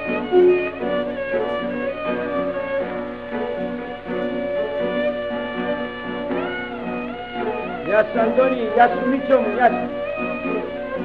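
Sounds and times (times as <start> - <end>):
rhythmic lower accompaniment: 0.0 - 11.0
violin melody: 0.0 - 11.0.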